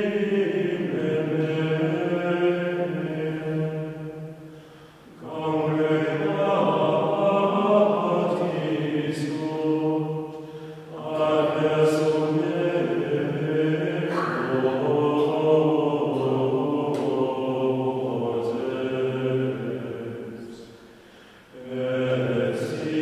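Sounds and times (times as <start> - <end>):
male voices singing plainchant: 0.0 - 4.1, 5.1 - 20.7, 21.5 - 23.0.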